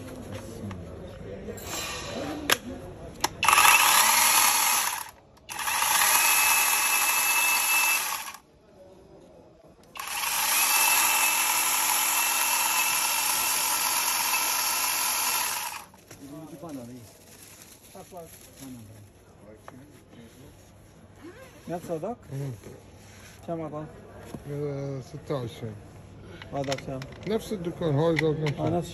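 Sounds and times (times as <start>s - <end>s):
electric chainsaw running: 3.4s - 8.4s, 10.0s - 15.9s.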